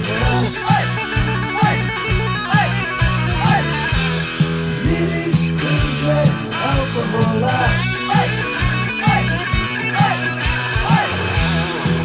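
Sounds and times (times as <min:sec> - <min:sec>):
bass and drums: 0:00.0 - 0:12.0
electric guitar: 0:00.0 - 0:12.0.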